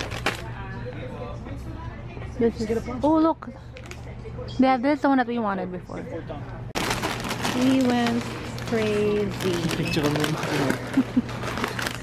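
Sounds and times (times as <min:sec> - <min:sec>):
plastic bags crinkling: 0:00.0 - 0:00.5, 0:06.8 - 0:12.0.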